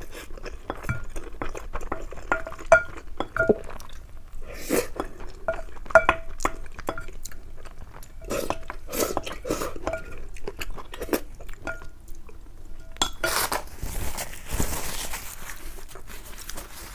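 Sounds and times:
person chewing: 0.0 - 12.5.

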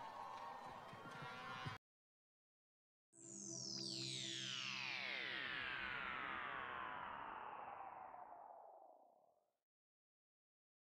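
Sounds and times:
synthesized chord sliding downward: 3.2 - 9.3.

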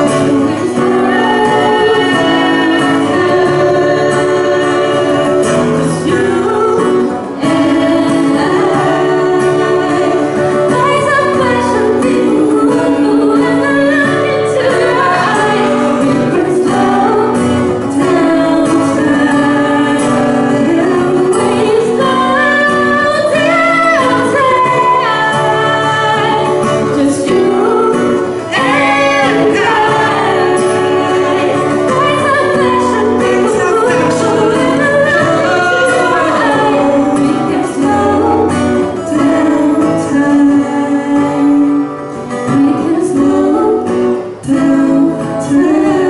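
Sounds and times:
acoustic guitar: 0.0 - 46.0
woman and man singing: 0.0 - 46.0.

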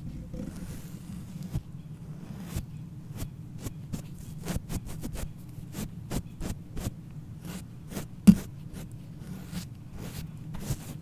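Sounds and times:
brush scratching microphone grille: 7.5 - 11.0.

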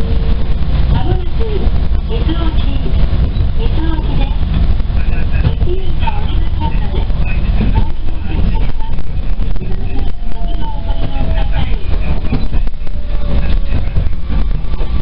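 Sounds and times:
train wheels rumbling on rails: 0.0 - 15.0.

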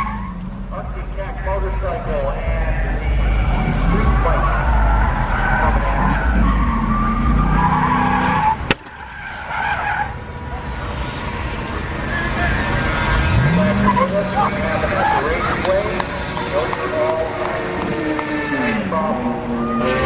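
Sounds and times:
voices: 0.0 - 7.9, 9.5 - 20.0
car engine running hard: 0.0 - 20.0
tyres skidding: 0.0 - 20.0
sharp crack: 8.6 - 9.1.

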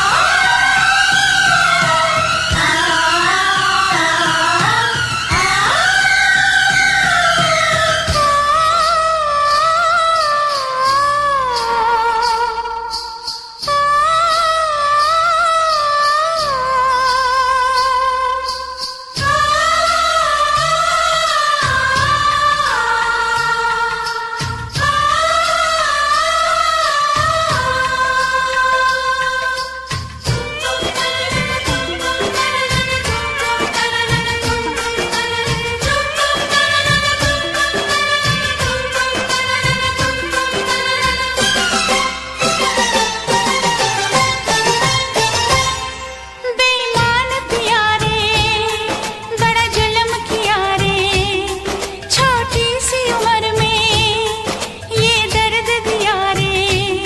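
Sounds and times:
steady drum beat: 0.0 - 8.9, 26.8 - 46.0
bass: 0.0 - 57.0
high voice singing with vibrato: 0.0 - 57.0.

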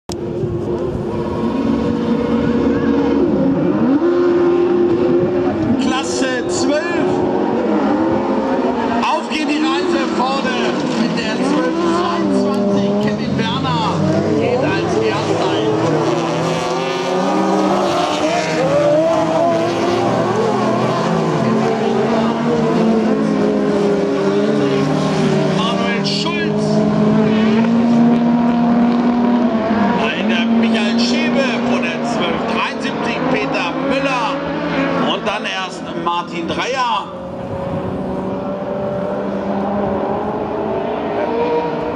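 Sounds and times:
race car engines revving: 0.1 - 41.9.

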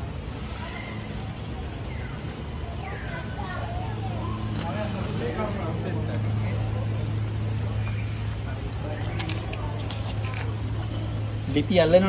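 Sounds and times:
people talking nearby: 0.0 - 12.0.

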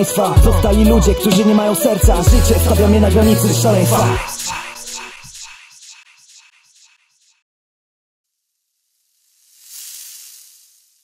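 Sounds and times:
smoky hissing whoosh: 9.4 - 10.8.

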